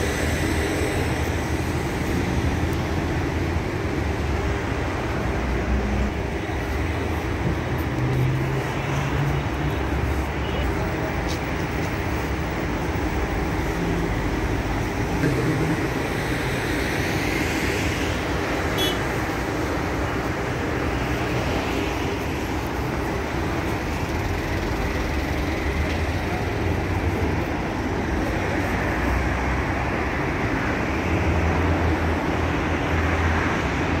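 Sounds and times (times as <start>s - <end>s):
street traffic noise: 0.0s - 34.0s.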